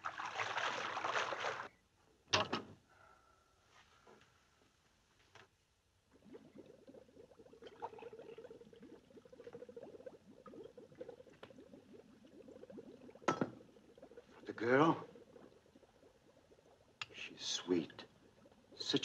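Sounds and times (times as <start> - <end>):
liquid bubbling in glassware: 6.1 - 19.0.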